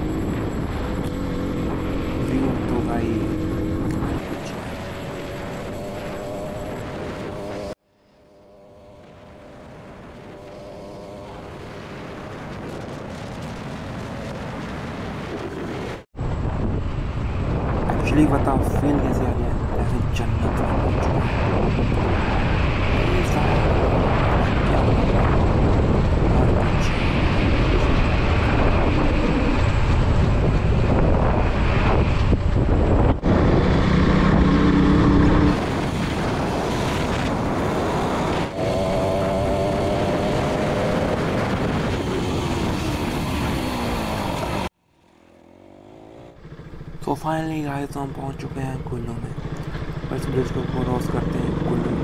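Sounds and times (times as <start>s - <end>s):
motorcycle engine running: 0.0s - 7.7s, 37.3s - 47.5s, 49.0s - 51.9s
wind rushing over microphone: 0.0s - 7.8s, 8.5s - 44.8s.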